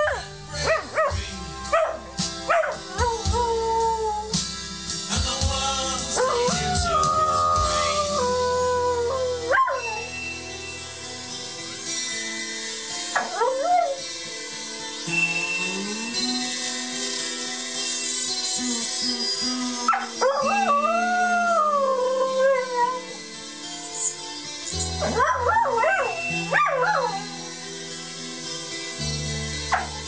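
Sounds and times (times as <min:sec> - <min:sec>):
music: 0:00.0 - 0:30.0
song playing: 0:00.0 - 0:30.0
dog howling: 0:06.1 - 0:10.0, 0:19.7 - 0:23.2, 0:25.0 - 0:27.4.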